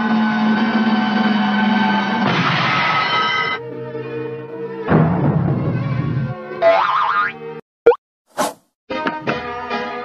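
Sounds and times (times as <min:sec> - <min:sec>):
cartoon background music: 0:04.9 - 0:08.0
short quick sweep: 0:08.3 - 0:08.7.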